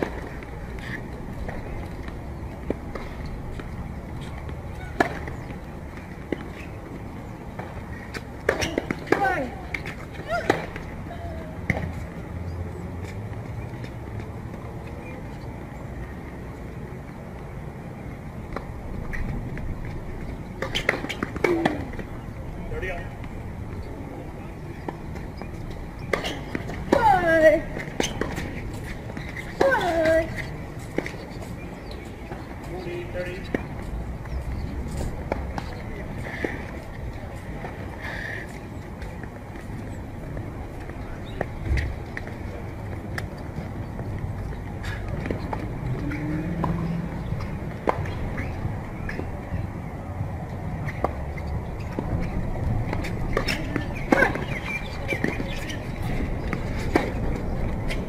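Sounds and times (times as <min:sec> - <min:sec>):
outdoor background murmur: 0:00.0 - 0:58.0
voices calling and grunting: 0:51.4 - 0:58.0.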